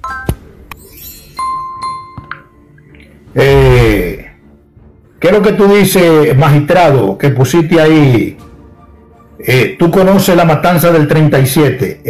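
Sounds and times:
notification bell dinging: 0.0 - 2.7.

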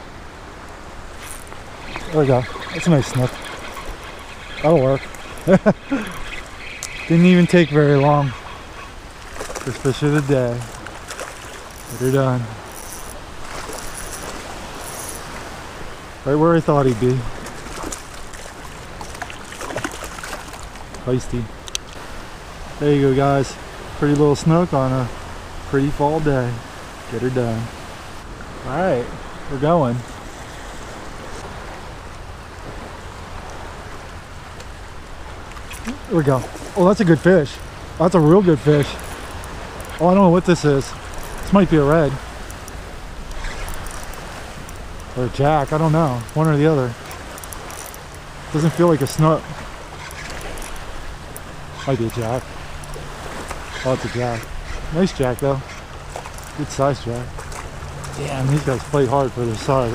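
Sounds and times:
choppy water: 0.0 - 59.9
wind: 0.0 - 59.9
faint ticks: 42.4 - 45.2, 46.2 - 48.2.

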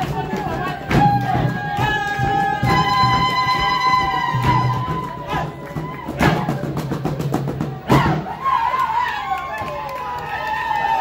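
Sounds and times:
traditional dance music: 0.0 - 11.0.

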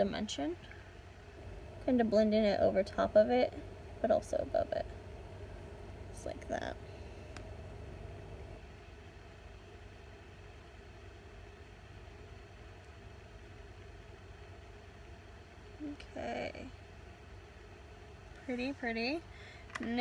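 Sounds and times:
low hum with faint hiss: 0.0 - 20.0.

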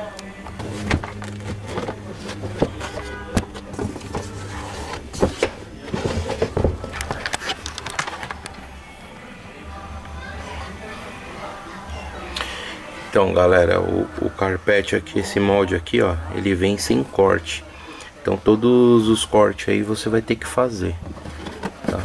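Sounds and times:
background music: 0.0 - 21.2
carpet rustling and scraping: 0.5 - 8.4, 21.0 - 22.0.

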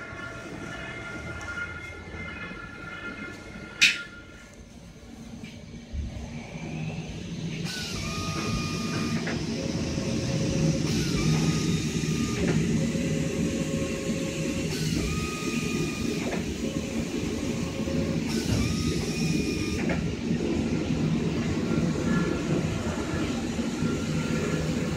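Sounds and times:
machine rumble with hiss: 0.0 - 24.9
stepped motor whine: 5.9 - 24.9.

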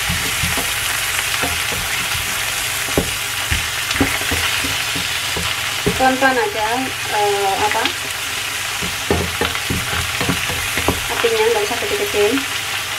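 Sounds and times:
spatula knocking against pan: 0.0 - 6.6, 7.6 - 11.7
oil sizzling in a frying pan: 0.0 - 12.9.

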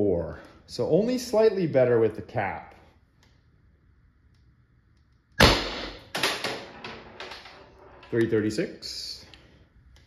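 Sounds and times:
sharp launcher shot: 5.4 - 6.0.

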